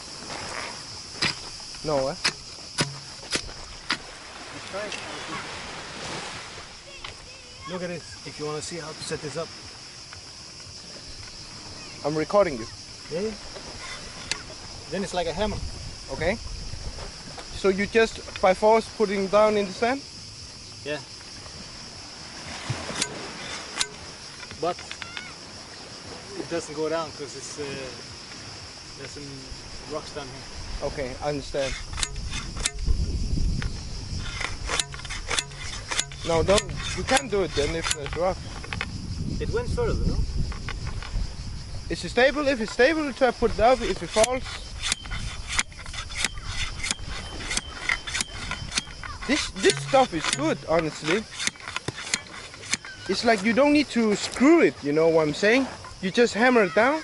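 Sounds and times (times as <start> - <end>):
cicadas buzzing: 0.0 - 57.0
sharp hammer knocks: 2.2 - 3.5
umbrella pole knocking on stones: 2.2 - 4.1, 44.2 - 52.8
stones grating: 31.5 - 32.9, 34.2 - 38.7, 43.7 - 53.6.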